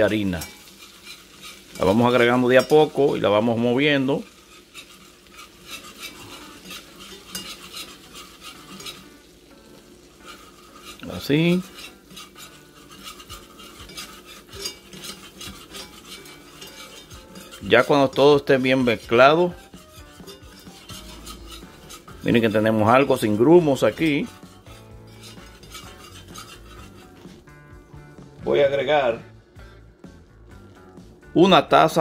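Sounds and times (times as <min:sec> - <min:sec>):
whisk scraping against pot: 0:00.0 - 0:27.7
faint sizzle: 0:00.0 - 0:32.0.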